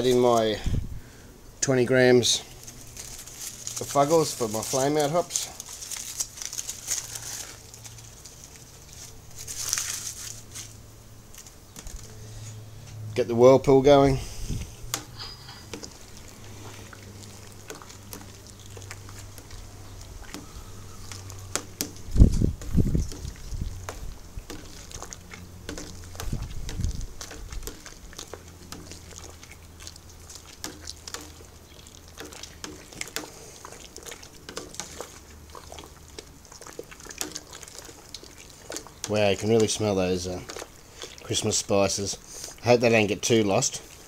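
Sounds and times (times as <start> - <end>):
steady low hum: 5.4 - 41.3
liquid sloshing and splashing: 14.4 - 44.0.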